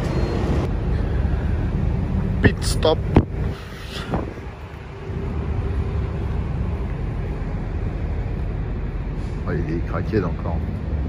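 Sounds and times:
vehicle noise: 0.0s - 11.0s
wind on microphone: 3.1s - 5.3s.

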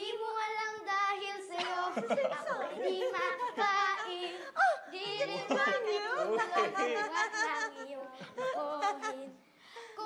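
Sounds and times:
people talking and laughing: 1.5s - 10.0s.

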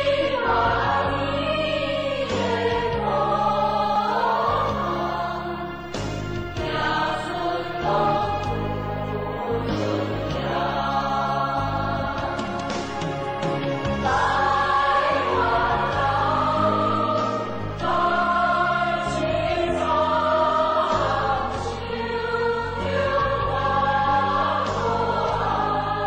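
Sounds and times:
choir holding long notes: 0.0s - 26.0s
steady bass line: 0.0s - 26.0s.

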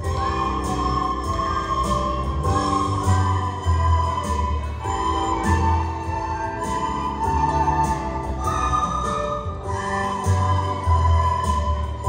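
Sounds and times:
flutes playing a tune: 0.0s - 12.0s
low bass accompaniment: 0.0s - 12.0s.

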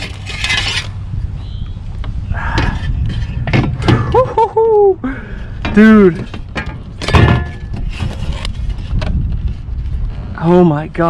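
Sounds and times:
steady low rumble: 0.0s - 11.0s
measuring board scraping on kayak: 7.7s - 10.3s.

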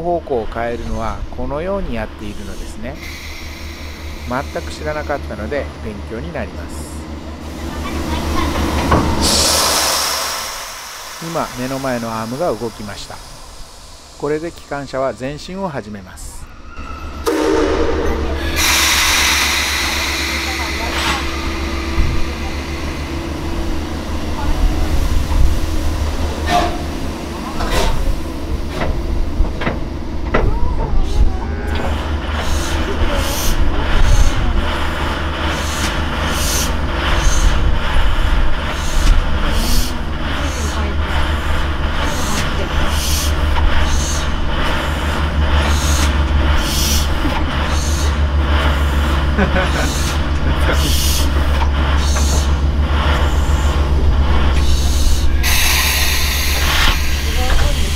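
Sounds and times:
steam locomotive exhaust chuffs: 0.0s - 16.5s, 17.1s - 57.9s
locomotive low rumble: 0.0s - 57.9s
air hissing: 2.3s - 5.3s, 9.1s - 15.7s, 17.2s - 27.1s, 49.8s - 57.9s.

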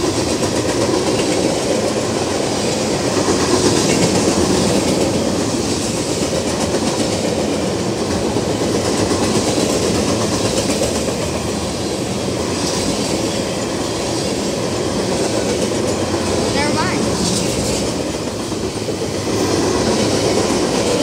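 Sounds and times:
train wheels rushing on rails: 0.0s - 21.0s.

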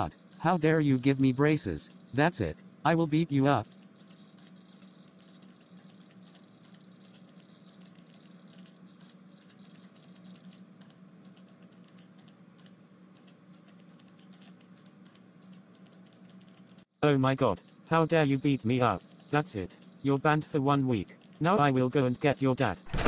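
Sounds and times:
low steady hum: 0.0s - 23.0s
keyboard typing: 2.4s - 16.9s, 17.6s - 20.0s, 20.7s - 21.8s.

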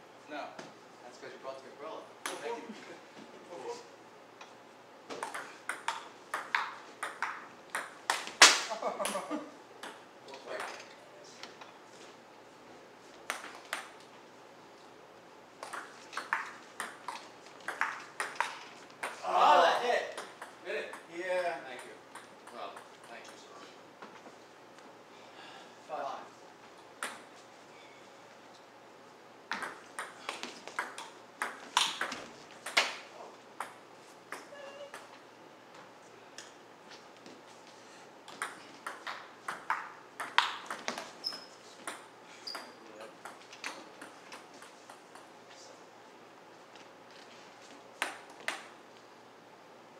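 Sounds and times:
table tennis ball bouncing: 5.1s - 8.5s, 9.8s - 10.0s, 13.3s - 14.0s, 15.6s - 19.2s, 20.1s - 21.2s, 21.8s - 23.4s, 27.0s - 27.3s, 29.5s - 35.2s, 38.3s - 45.3s, 48.0s - 48.7s
short high squeak: 41.2s - 41.6s.

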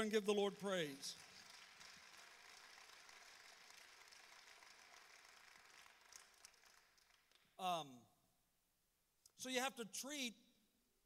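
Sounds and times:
congregation applause: 0.0s - 7.6s.

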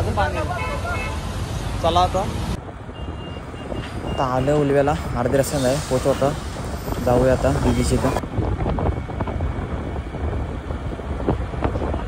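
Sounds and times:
road and engine noise: 0.0s - 12.0s
wind buffeting microphone: 2.2s - 12.0s.

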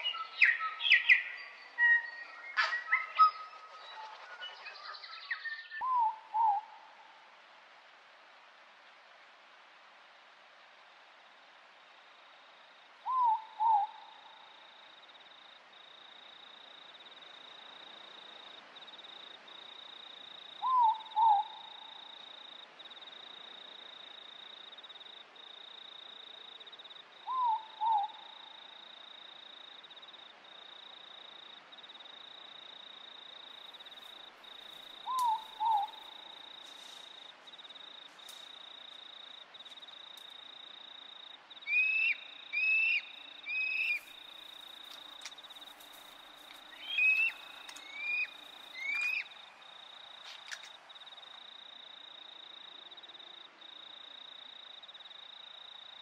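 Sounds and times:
night bird calling: 0.0s - 7.2s, 13.0s - 15.3s, 18.0s - 22.5s, 27.2s - 30.1s, 33.6s - 53.5s.

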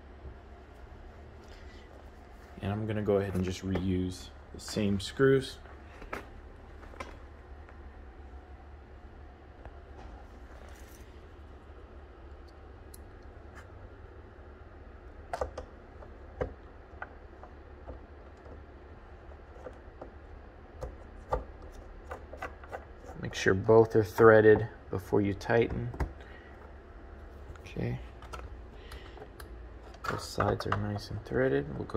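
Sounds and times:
steady low hum: 0.0s - 31.9s.

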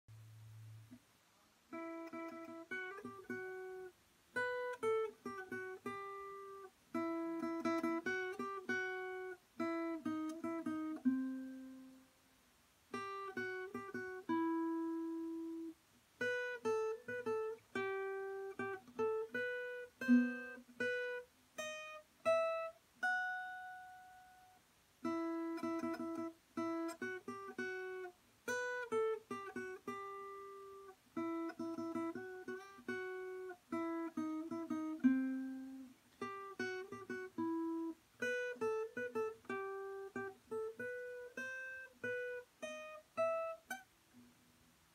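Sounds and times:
acoustic guitar picked melody: 0.1s - 44.9s.

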